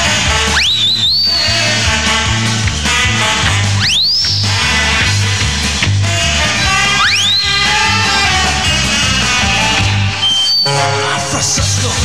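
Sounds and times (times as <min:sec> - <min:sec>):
punk band playing live: 0:00.0 - 0:12.0
shrill whistle sliding up: 0:00.4 - 0:01.8, 0:03.8 - 0:05.0, 0:06.9 - 0:08.7, 0:10.1 - 0:11.0.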